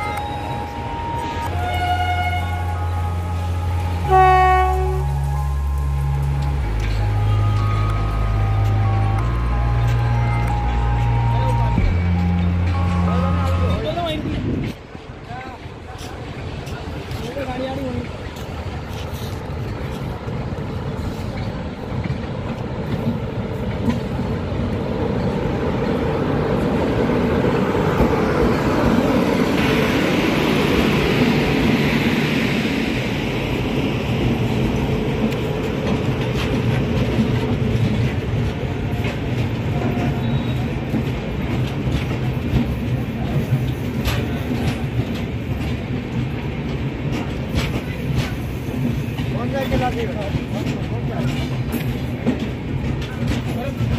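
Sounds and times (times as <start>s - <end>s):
electric locomotive passing: 0.0s - 53.9s
wheels clicking over rail joints: 34.7s - 53.9s.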